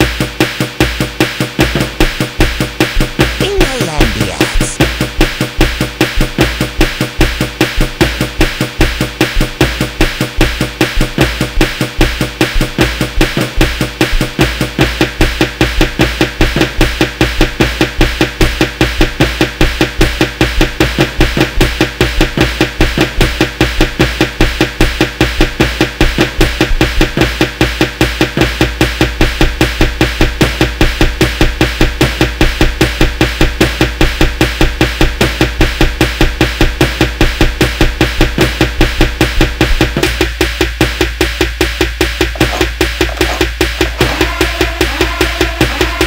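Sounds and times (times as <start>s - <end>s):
instrumental hip-hop beat: 42.2s - 46.0s.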